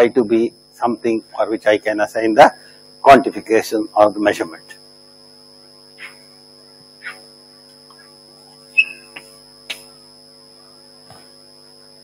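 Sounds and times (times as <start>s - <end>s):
electrical mains hum: 0.0s - 12.0s
faint high whine: 0.0s - 12.0s.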